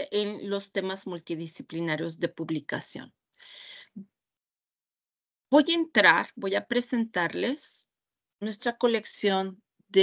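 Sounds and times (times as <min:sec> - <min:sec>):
faint in-breath: 0:03.4 - 0:04.0.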